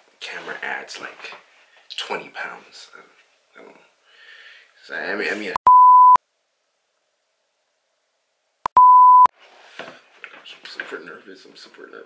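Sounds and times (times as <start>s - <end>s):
single-pitched test tone beep: 5.6s - 6.2s, 8.7s - 9.3s.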